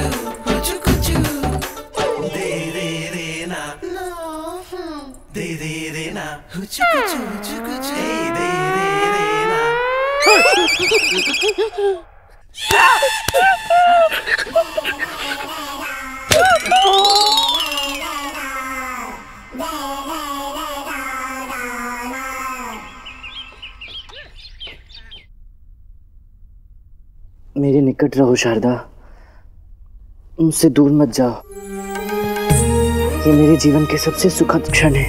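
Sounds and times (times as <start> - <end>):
short bouncing notes: 6.8 - 11.2, 16.3 - 18.0
tone gliding upward: 6.8 - 11.6, 16.3 - 18.2
birds chirping: 6.8 - 11.7, 16.4 - 18.4, 22.0 - 25.3
fast warbling tone: 6.8 - 11.7, 16.3 - 18.3.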